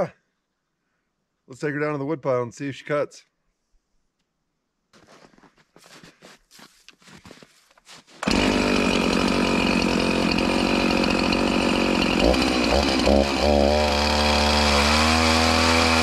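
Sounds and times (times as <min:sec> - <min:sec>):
faint shuffling and handling: 0:04.9 - 0:08.2
chainsaw running: 0:08.0 - 0:16.0.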